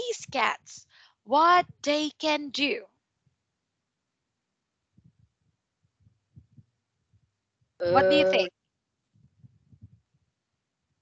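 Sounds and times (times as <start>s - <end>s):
faint low thumps: 5.0s - 8.5s, 9.2s - 10.1s.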